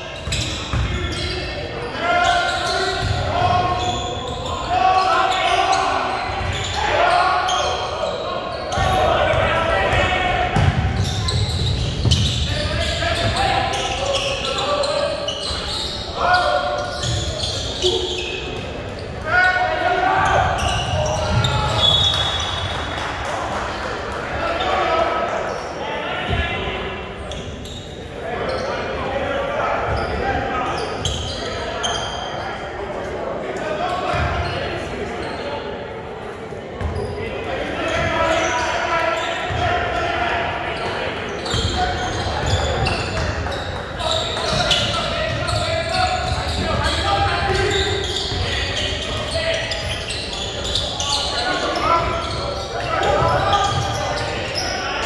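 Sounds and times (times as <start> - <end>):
voices shouting in gym: 0.0 - 23.0, 36.9 - 55.0.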